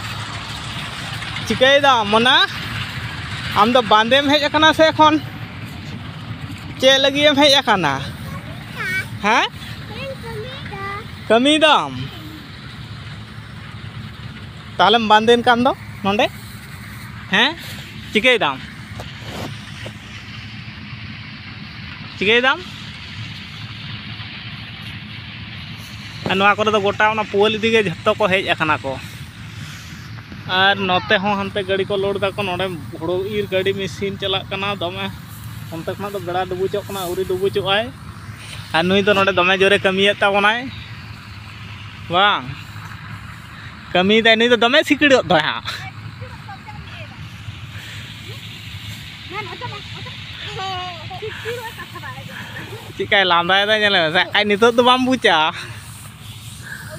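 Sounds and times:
distant engine humming: 0:00.0 - 0:56.9
outdoor background noise: 0:00.0 - 0:56.9
child vocal sounds: 0:08.0 - 0:09.2, 0:09.8 - 0:11.2, 0:12.0 - 0:12.6.

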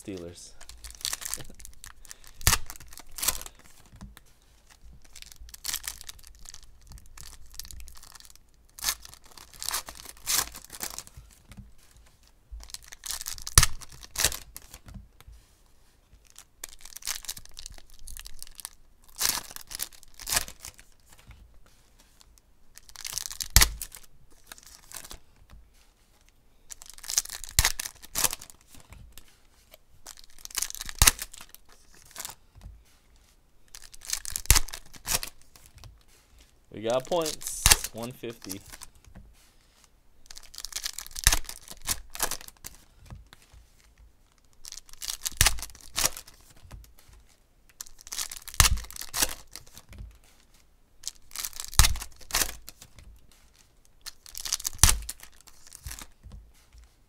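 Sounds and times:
foil wrappers tearing and crinkling: 0:00.0 - 0:03.9, 0:04.6 - 0:11.1, 0:12.6 - 0:14.8, 0:16.2 - 0:21.2, 0:22.7 - 0:25.2, 0:26.7 - 0:28.8, 0:30.0 - 0:32.4, 0:33.7 - 0:35.8, 0:36.9 - 0:38.9, 0:40.2 - 0:43.4, 0:44.3 - 0:50.4, 0:51.0 - 0:56.2.

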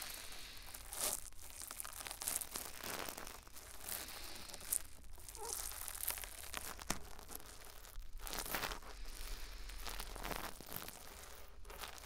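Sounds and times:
brush scratching on microphone: 0:05.3 - 0:05.8.

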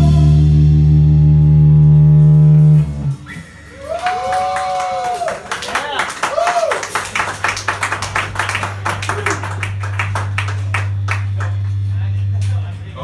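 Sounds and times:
low hum from amplifiers: 0:00.0 - 0:13.0
person whooping: 0:03.7 - 0:07.0
audience clapping and cheering: 0:03.7 - 0:11.9.

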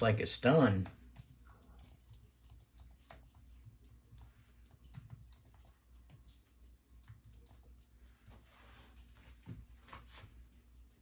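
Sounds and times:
keyboard typing clicks: 0:00.8 - 0:07.9.

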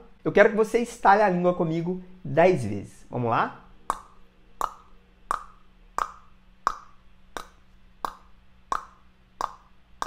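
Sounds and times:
man clicking his tongue: 0:03.9 - 0:10.0.

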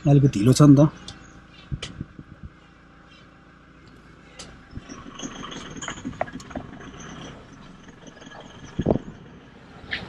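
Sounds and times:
engine and tyre rumble: 0:00.0 - 0:10.0
small knocks and rattles: 0:03.9 - 0:10.0.

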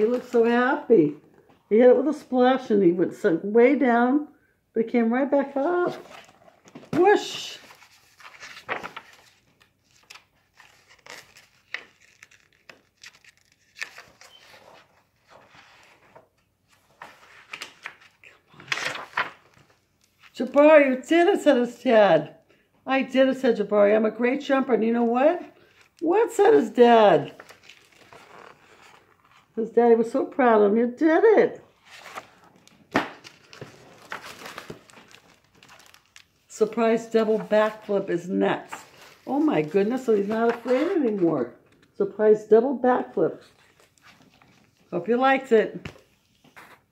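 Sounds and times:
paper pages rustling: 0:00.0 - 0:00.6, 0:05.8 - 0:20.6, 0:25.6 - 0:29.5, 0:31.7 - 0:42.0, 0:43.4 - 0:45.0, 0:45.7 - 0:46.9.

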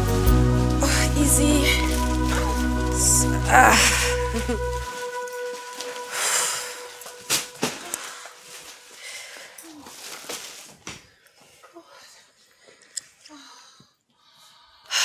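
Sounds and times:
background music: 0:00.0 - 0:09.0
shopping bags rustling: 0:00.0 - 0:11.6
footsteps: 0:00.2 - 0:11.6.

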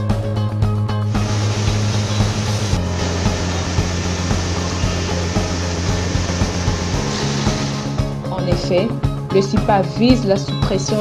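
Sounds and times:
background music with bass: 0:00.0 - 0:11.0
machinery rushing noise: 0:01.1 - 0:08.2.

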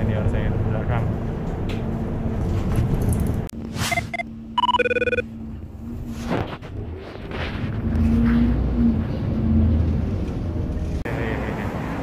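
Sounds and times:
bus engine and road rumble: 0:00.0 - 0:04.6, 0:05.2 - 0:12.0.

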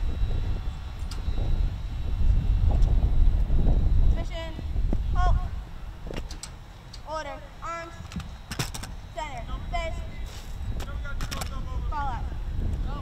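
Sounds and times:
low rumble: 0:00.0 - 0:06.2
high-pitched voices talking: 0:09.0 - 0:13.0
sharp clicks: 0:10.8 - 0:11.6.

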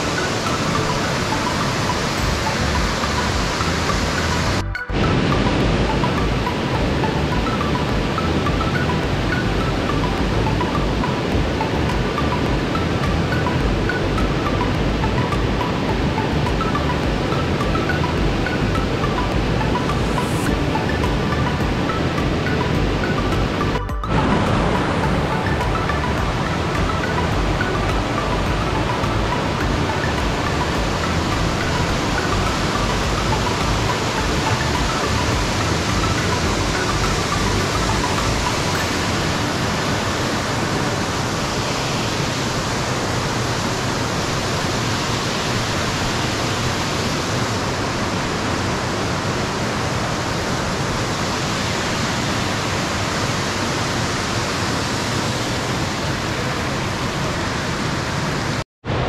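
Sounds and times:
waterfall and creek rushing: 0:00.0 - 0:59.0.

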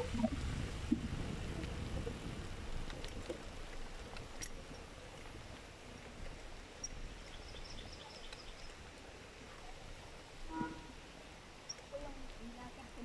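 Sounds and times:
steady wind: 0:00.0 - 0:13.0.

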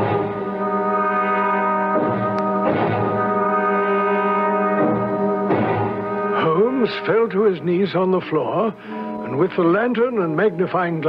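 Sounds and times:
loud held brass chord: 0:00.0 - 0:09.6.

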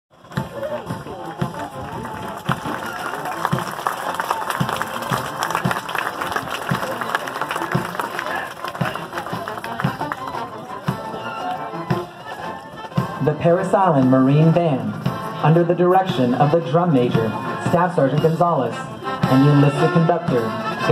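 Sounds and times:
military band playing a march: 0:00.1 - 0:20.9
spectators talking: 0:00.3 - 0:20.9.

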